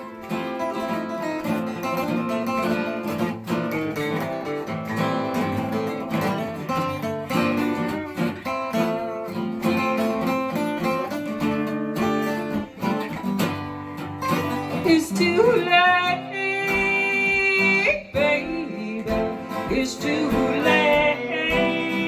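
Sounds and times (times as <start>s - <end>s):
acoustic guitars strummed: 0.0s - 22.0s.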